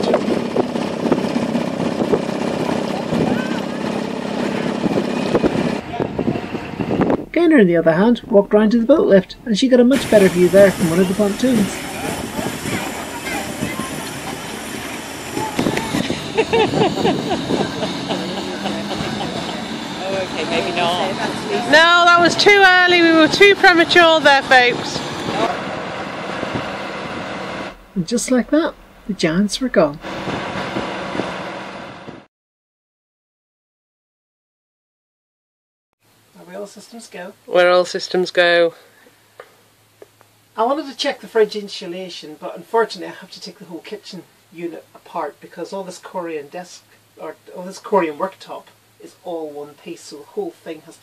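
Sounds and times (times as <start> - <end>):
motorboat engines running: 0.0 - 32.3
crowd chatter: 2.6 - 7.4, 9.9 - 25.7.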